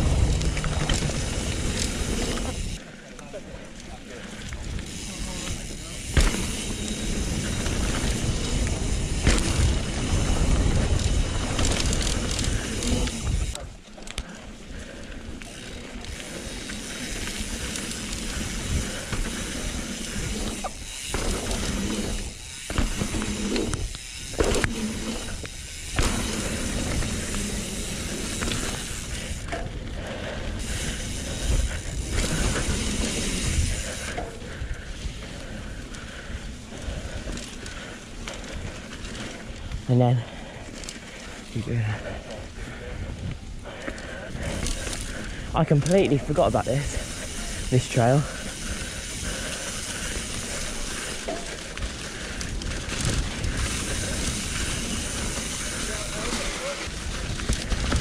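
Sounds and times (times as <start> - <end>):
bike tyres rumbling over dirt: 0.0 - 58.0
wind buffeting microphone: 41.6 - 47.7.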